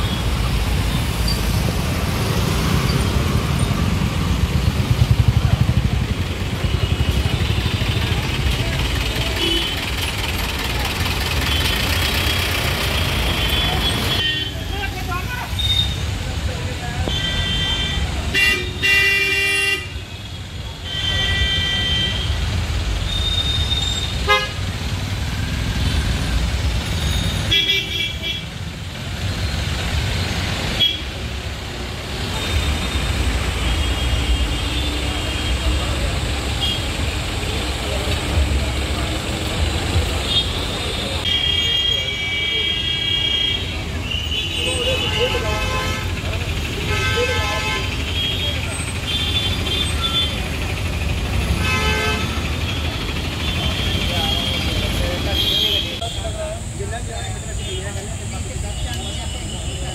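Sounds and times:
traffic engine rumble: 0:00.0 - 0:59.9
vehicle horns honking: 0:09.0 - 0:10.0, 0:17.0 - 0:22.4, 0:23.1 - 0:24.7, 0:40.2 - 0:50.6, 0:51.4 - 0:56.3.

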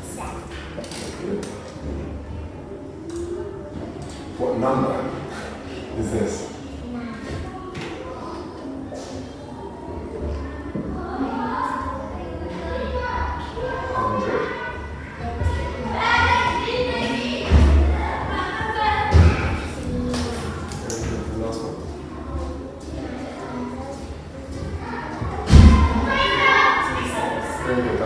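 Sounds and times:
faint voices: 0:00.0 - 0:28.0.

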